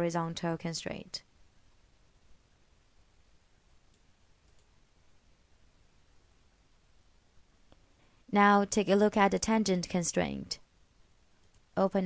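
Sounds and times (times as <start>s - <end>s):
faint computer mouse clicks: 3.9s - 4.7s.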